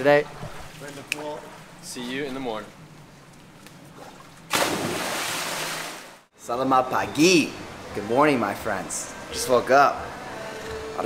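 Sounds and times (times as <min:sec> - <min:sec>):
loud splash into pool: 0:04.5 - 0:06.2.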